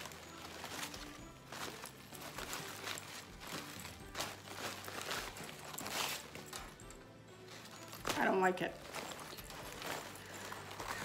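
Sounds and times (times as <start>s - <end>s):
fabric ribbon rustling: 0.0s - 11.0s.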